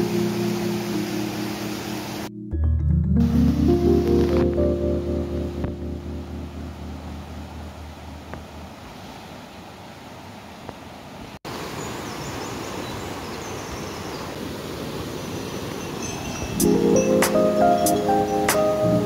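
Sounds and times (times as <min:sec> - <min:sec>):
stream rushing over rocks: 0:00.0 - 0:02.3, 0:05.4 - 0:19.0
background music: 0:00.0 - 0:07.7, 0:16.6 - 0:19.0.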